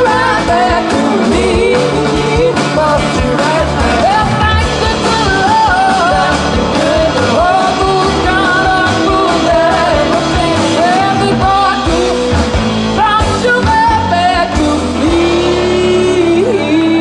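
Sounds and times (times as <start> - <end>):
drum kit: 0.0 - 17.0
electric guitar: 0.0 - 17.0
upright bass: 0.0 - 17.0
woman singing: 0.0 - 17.0.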